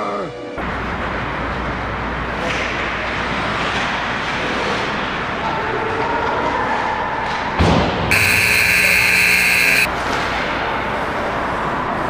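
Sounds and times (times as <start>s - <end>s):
ice rink skating noise: 0.6s - 12.0s
electric buzzer tone: 8.1s - 9.9s.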